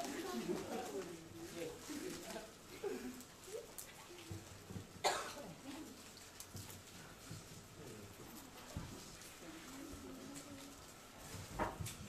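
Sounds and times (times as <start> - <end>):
faint murmuring voices: 0.0 - 12.0
sharp cough: 5.0 - 5.5.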